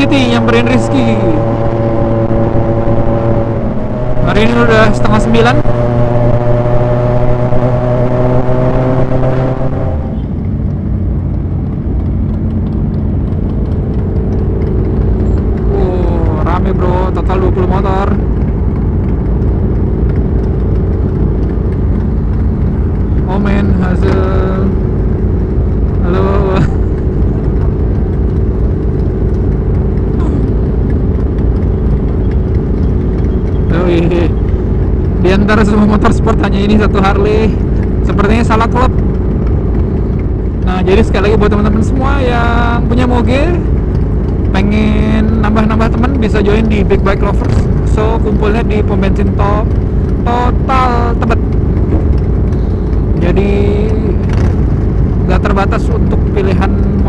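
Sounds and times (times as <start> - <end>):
motorcycle engine running: 0.0 - 57.0
motorcycles idling together: 10.5 - 57.0
voices: 30.1 - 30.7, 44.5 - 51.5.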